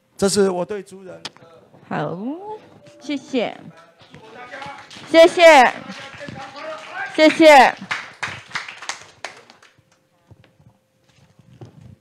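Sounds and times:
small audience applause: 0:03.7 - 0:10.0.

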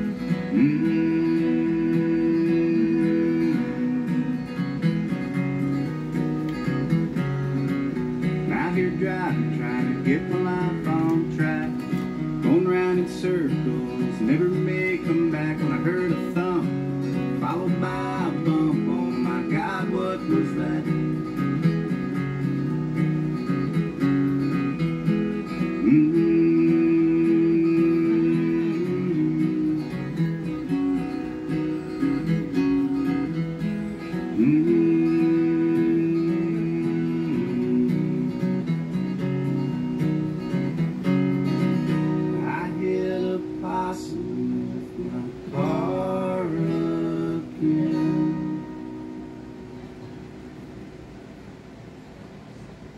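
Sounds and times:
strummed acoustic guitar: 0:00.0 - 0:51.6.

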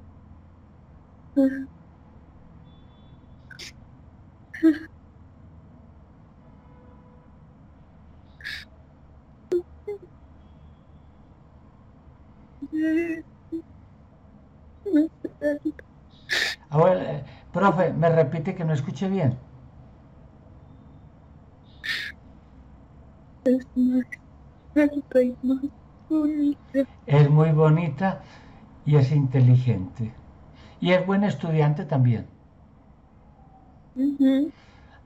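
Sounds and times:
person murmuring over video call: 0:01.4 - 0:01.7, 0:04.6 - 0:04.9.

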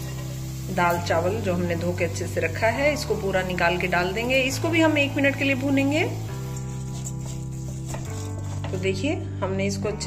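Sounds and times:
faint food sizzle: 0:00.0 - 0:09.2.

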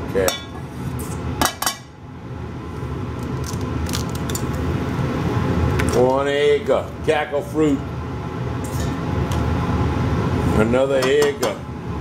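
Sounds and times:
egg cracking: 0:03.2 - 0:04.6.

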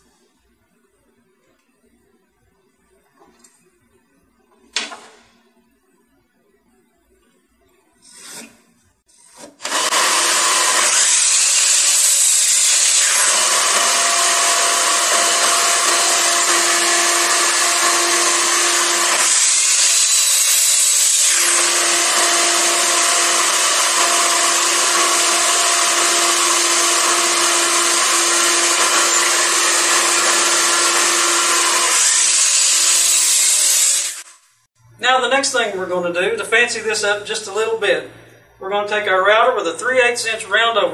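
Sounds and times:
miter saw cutting boards: 0:08.0 - 0:34.4.

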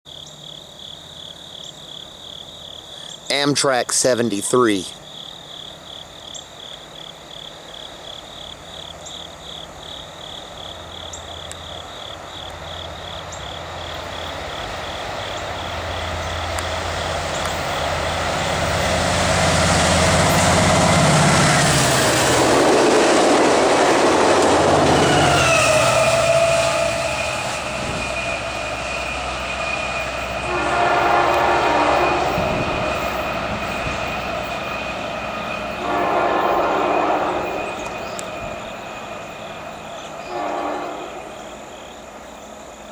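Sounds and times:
train engine rumble: 0:00.2 - 0:42.9
train horn blast: 0:24.8 - 0:33.2, 0:35.6 - 0:38.2, 0:40.2 - 0:41.6.

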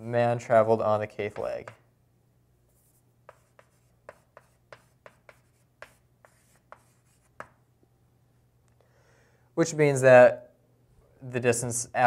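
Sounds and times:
writing strokes on a board: 0:02.7 - 0:07.6.

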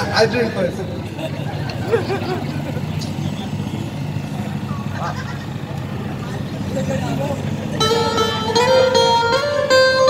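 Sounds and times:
crowd talking faintly: 0:00.0 - 0:10.0.

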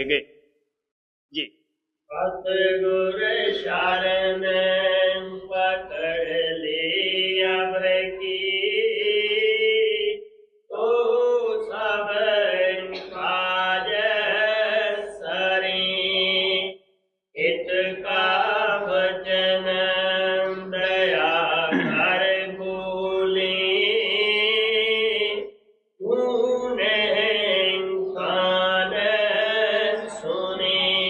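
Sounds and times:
person chanting a hymn: 0:02.2 - 0:10.1, 0:17.4 - 0:25.4, 0:26.0 - 0:31.0.

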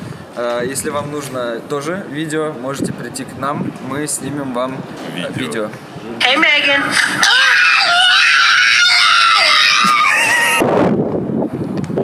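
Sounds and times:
noisy rush: 0:04.8 - 0:12.0
person screaming: 0:07.0 - 0:10.6.

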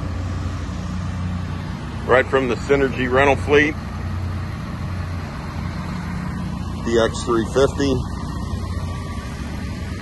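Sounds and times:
excavator diesel engine idling: 0:00.0 - 0:10.0.

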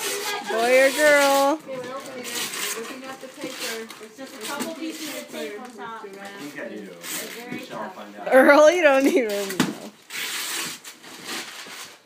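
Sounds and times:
tissue paper rustling: 0:00.0 - 0:07.8.

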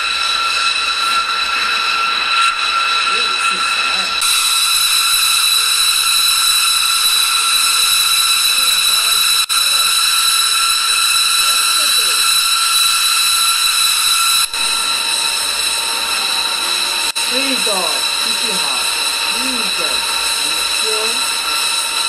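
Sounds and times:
jet turbine whine: 0:00.0 - 0:22.0.

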